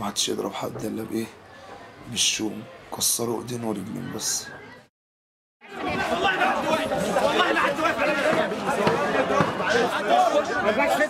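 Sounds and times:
babble of men talking: 5.7s - 11.0s.

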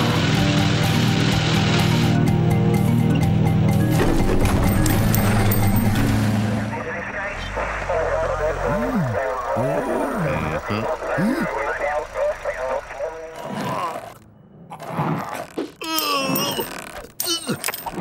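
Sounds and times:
music: 0.0s - 6.7s
cartoon car engine running: 4.3s - 14.2s
men mumbling: 7.3s - 14.2s.

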